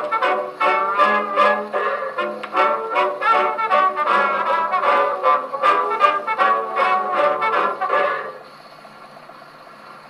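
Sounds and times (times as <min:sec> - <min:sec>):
brass chord: 0:00.0 - 0:08.4
phonograph surface hiss: 0:00.0 - 0:10.0.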